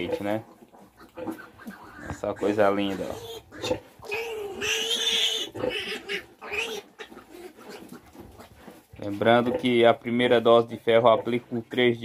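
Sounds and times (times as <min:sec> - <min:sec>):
piglets squealing: 0:00.8 - 0:08.5.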